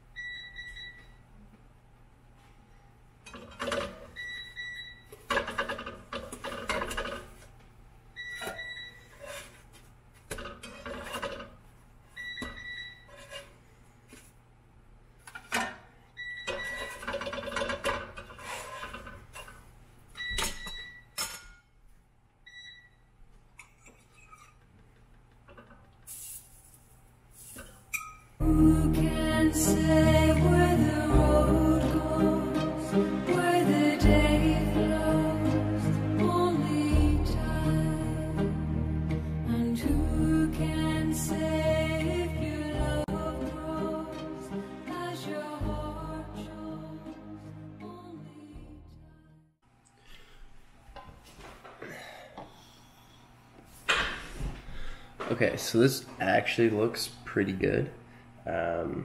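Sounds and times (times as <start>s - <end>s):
spatula scraping frying pan: 9.0s - 9.7s, 10.4s - 11.6s, 13.0s - 13.7s, 16.6s - 19.6s.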